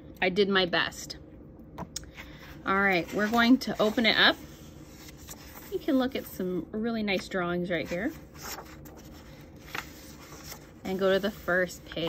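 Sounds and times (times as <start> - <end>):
book pages turning: 2.9 - 5.9, 7.8 - 12.0.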